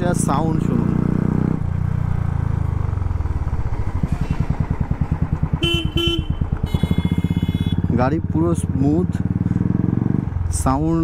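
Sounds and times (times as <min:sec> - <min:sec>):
motorcycle engine thumping: 0:01.7 - 0:07.9
vehicle horn honking: 0:05.5 - 0:08.0.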